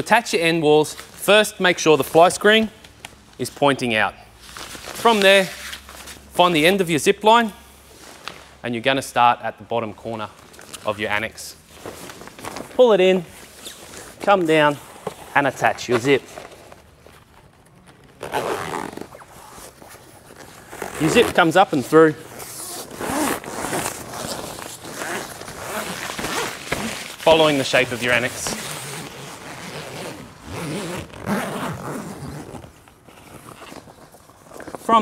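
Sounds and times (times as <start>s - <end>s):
fabric handling: 10.2s - 35.0s
tent zipper zipping: 18.0s - 34.9s.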